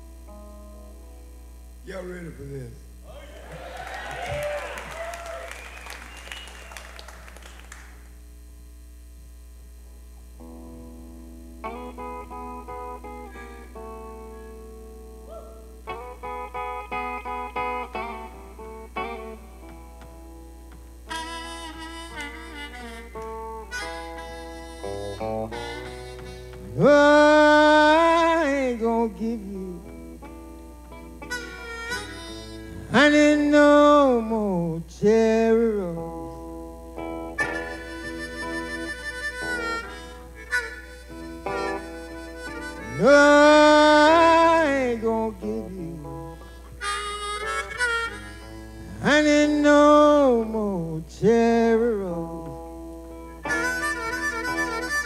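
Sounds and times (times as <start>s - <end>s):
electric guitar picking notes: 0.0s - 55.0s
harmonica bent notes: 11.6s - 34.6s, 36.0s - 55.0s.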